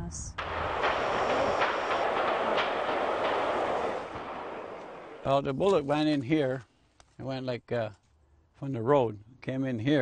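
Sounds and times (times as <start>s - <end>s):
faint sharp cracks: 0.4s - 5.9s.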